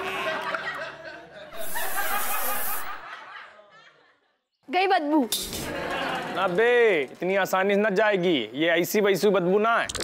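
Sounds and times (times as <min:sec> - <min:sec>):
laughter: 0:00.0 - 0:04.6, 0:05.6 - 0:06.5.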